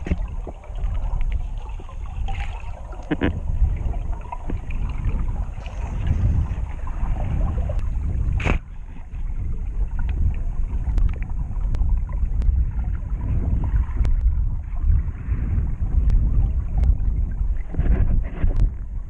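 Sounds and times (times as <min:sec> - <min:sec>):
muffled underwater rumble: 0:00.0 - 0:19.0
water rush: 0:00.0 - 0:19.0.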